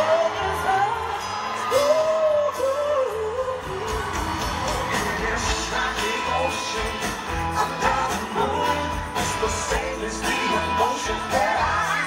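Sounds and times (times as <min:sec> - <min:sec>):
live rock band playing: 0:00.0 - 0:12.0
person singing: 0:00.0 - 0:12.0.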